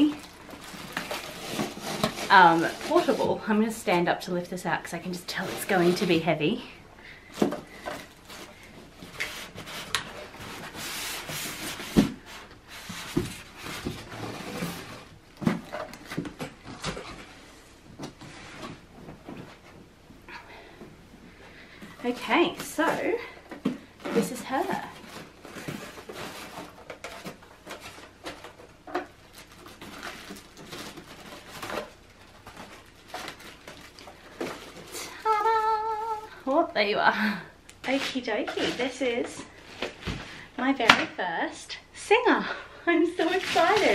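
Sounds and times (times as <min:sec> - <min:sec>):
foam and plastic wrap crinkling: 0:00.0 - 0:18.9, 0:21.8 - 0:37.0, 0:37.8 - 0:40.9, 0:42.9 - 0:43.9.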